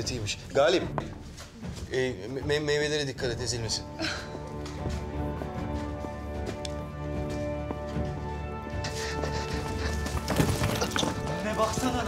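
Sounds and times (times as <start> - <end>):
background music: 0.0 - 12.0
clatter of knocks and thuds: 9.8 - 11.4.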